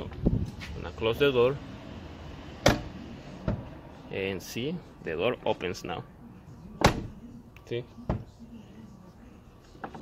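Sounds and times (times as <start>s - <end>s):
truck door slamming: 2.6s - 3.7s, 6.8s - 7.2s.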